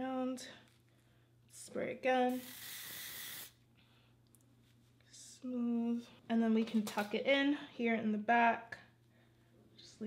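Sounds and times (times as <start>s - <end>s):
hair spray hissing: 2.3s - 3.6s.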